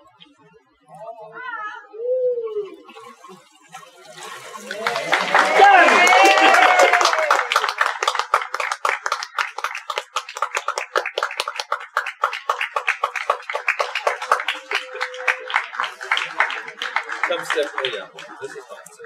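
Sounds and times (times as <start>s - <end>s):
small group clapping: 4.4s - 19.0s.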